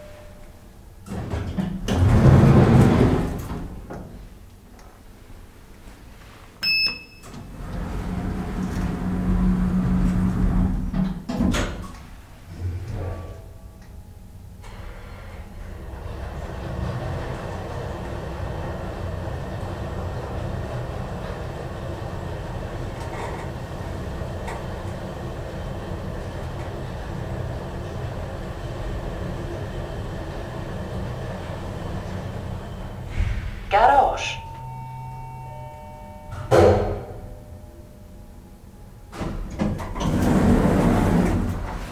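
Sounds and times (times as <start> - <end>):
elevator travelling rumble and hum: 0.0 - 5.6, 7.3 - 41.9
elevator doors sliding shut: 1.0 - 4.3, 6.7 - 13.9, 14.6 - 33.7, 34.5 - 37.7, 38.9 - 41.9.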